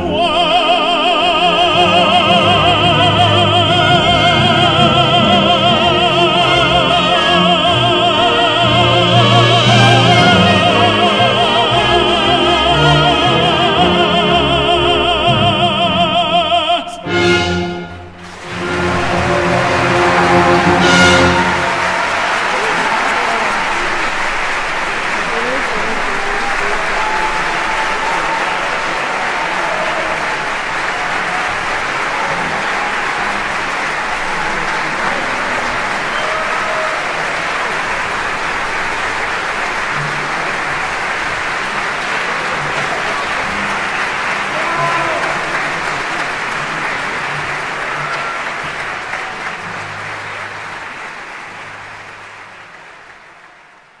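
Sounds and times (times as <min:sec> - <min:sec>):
audience applauding: 0:00.0 - 0:16.5, 0:17.2 - 0:54.0.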